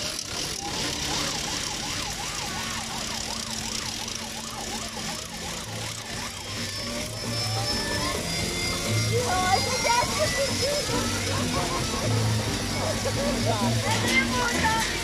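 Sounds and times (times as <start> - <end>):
crowd noise: 0.0 - 15.0
siren warbling: 0.0 - 15.0.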